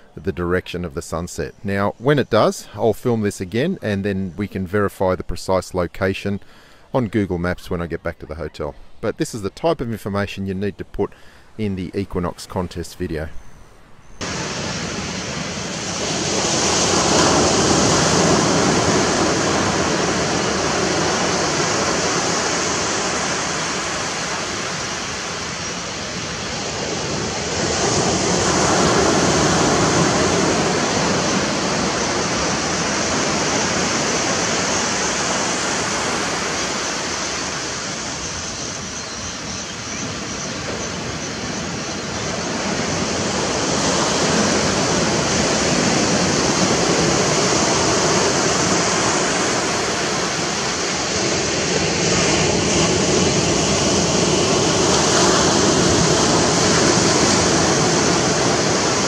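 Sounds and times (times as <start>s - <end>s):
small waves washing onto beach: 14.2s - 59.0s.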